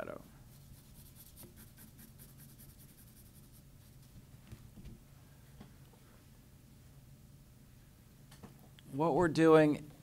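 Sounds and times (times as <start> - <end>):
pencil scratching on paper: 0.5 - 3.7.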